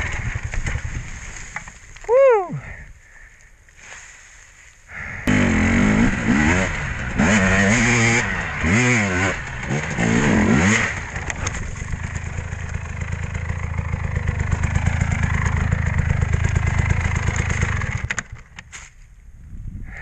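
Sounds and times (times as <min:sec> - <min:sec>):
dirt bike engine revving: 0:00.0 - 0:01.0, 0:05.2 - 0:18.1.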